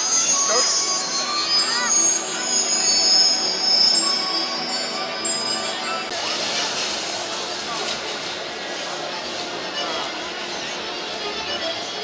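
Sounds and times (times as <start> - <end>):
music with chime-like tones: 0.0 - 6.5
spectators chattering: 0.0 - 12.0.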